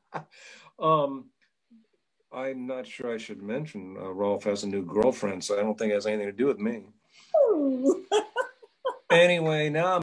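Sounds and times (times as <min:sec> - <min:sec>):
woman laughing: 0:07.5 - 0:09.3.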